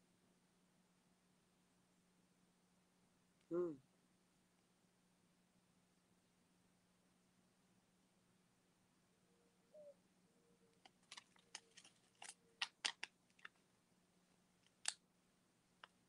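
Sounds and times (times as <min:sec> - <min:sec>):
faint steady hum: 0:00.0 - 0:16.0
paper and packaging crackling: 0:10.8 - 0:13.6.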